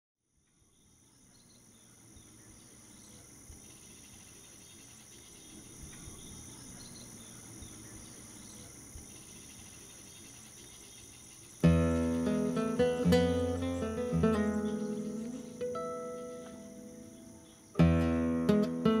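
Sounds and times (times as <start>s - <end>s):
insects chirring: 0.3s - 19.0s.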